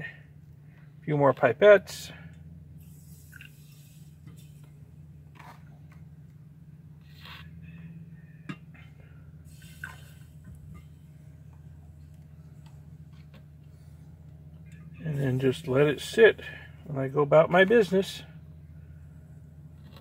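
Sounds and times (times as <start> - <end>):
steady low hum: 0.0 - 20.0
liquid dripping into a beaker: 3.2 - 3.7.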